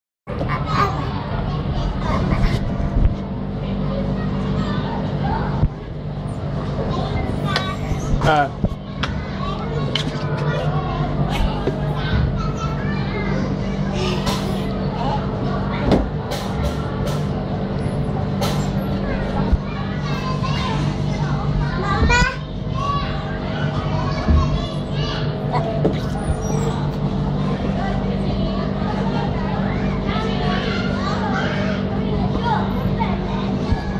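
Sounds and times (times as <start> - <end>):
steady low rumble: 0.3 - 30.7
children's voices: 0.3 - 33.9
play-area hubbub: 0.3 - 33.9
steady low hum: 0.3 - 33.9.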